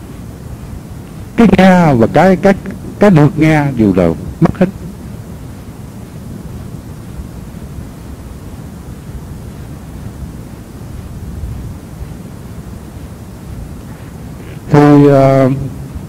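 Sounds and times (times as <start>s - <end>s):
faint hiss: 0.0s - 16.0s.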